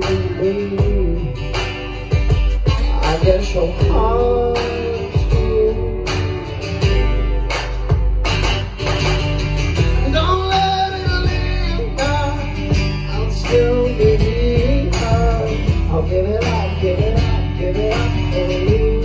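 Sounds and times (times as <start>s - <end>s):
person singing: 0.0s - 8.1s, 10.0s - 19.0s
drums keeping a steady beat: 0.0s - 19.0s
electric bass: 0.0s - 19.0s
strummed acoustic guitar: 0.0s - 19.0s.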